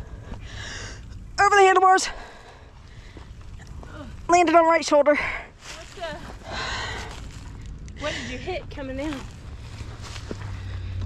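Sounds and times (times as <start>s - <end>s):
strained breathing: 0.0s - 1.3s, 2.1s - 4.2s, 5.1s - 8.6s, 9.5s - 11.0s
wind rumble on microphone: 0.0s - 11.0s.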